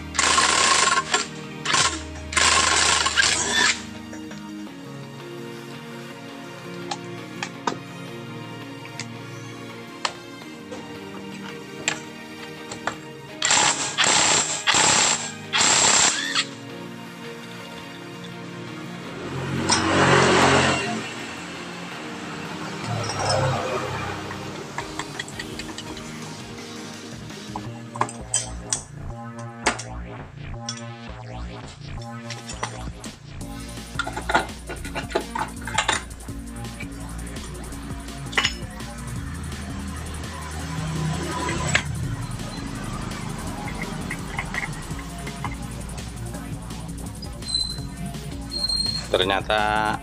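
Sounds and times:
background music: 0:00.0 - 0:50.0
impact wrench hammering: 0:41.2 - 0:45.6.

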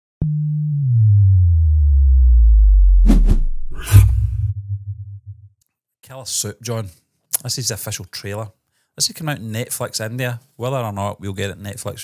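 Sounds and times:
deep bass tone sliding downward: 0:00.2 - 0:05.5.

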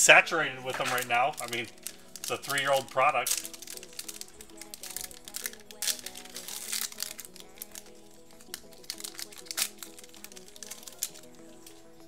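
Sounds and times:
background music: 0:00.0 - 0:12.0
plastic wrapper crinkling: 0:00.1 - 0:12.0.

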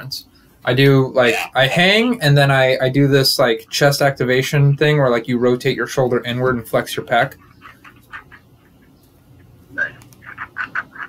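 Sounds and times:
voice over speakerphone: 0:01.2 - 0:02.2, 0:09.8 - 0:10.1.

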